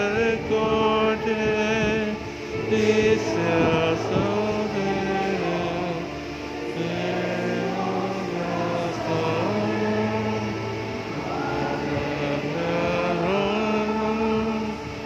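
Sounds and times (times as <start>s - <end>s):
choir and congregation singing hymn: 0.0s - 15.0s.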